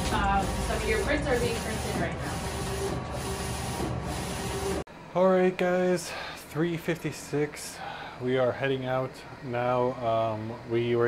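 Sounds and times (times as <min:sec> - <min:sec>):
printer running: 0:00.0 - 0:04.9.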